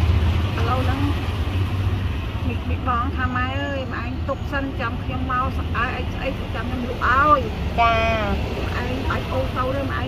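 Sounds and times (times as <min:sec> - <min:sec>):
elderly woman speaking: 0:02.5 - 0:10.0.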